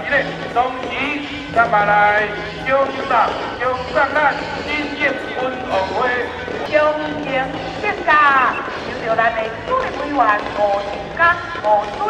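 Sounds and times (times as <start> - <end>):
person singing with music: 0.0 - 12.0.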